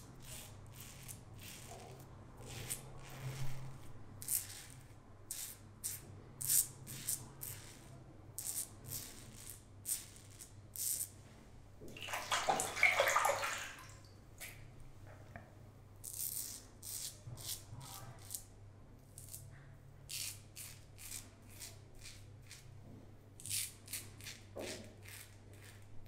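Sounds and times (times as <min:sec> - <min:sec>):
tap water running: 0:11.8 - 0:14.5.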